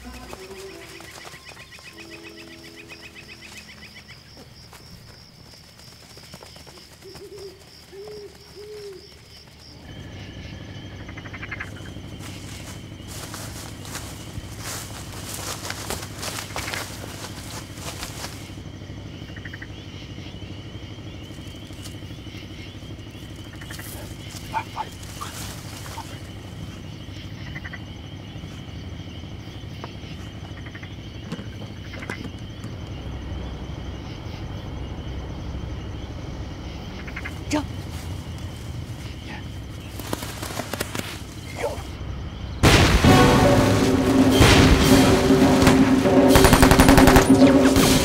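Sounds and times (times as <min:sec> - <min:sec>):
dramatic film music: 0:00.0 - 0:04.2, 0:41.3 - 0:48.0
rapid volley of cracks: 0:42.6 - 0:48.0.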